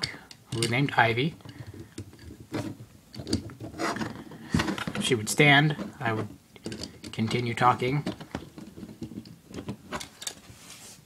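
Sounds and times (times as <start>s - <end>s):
plastic parts scraping: 0.0s - 10.7s.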